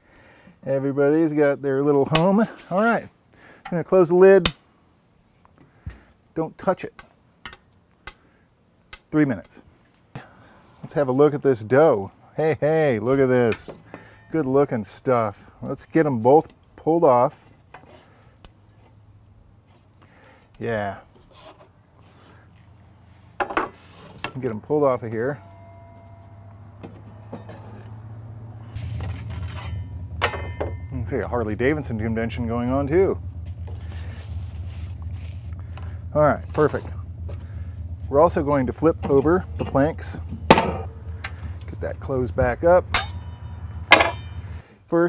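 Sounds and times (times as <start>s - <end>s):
motorcycle engines rumbling: 24.0s - 44.7s
metal spatula clinking and scraping: 25.4s - 28.0s.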